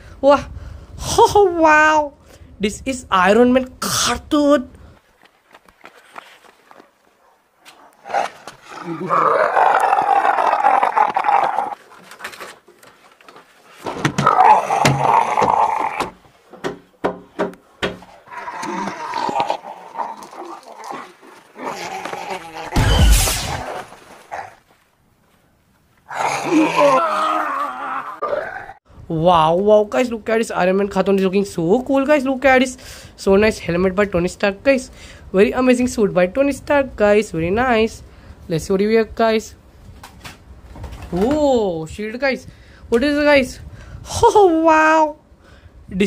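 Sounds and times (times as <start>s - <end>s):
person laughing deep growling: 8.7s - 11.8s, 26.2s - 28.8s
man groaning: 26.3s - 28.8s.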